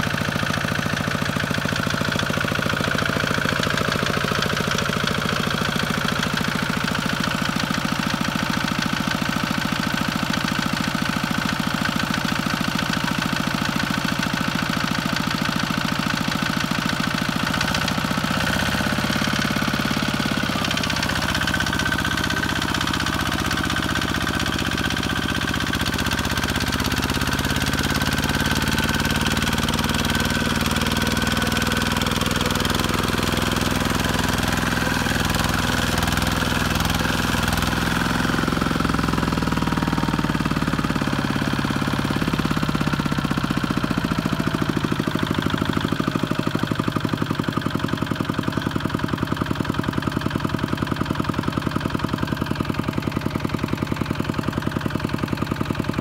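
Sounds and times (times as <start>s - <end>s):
diesel tractor engine knocking: 0.0s - 56.0s.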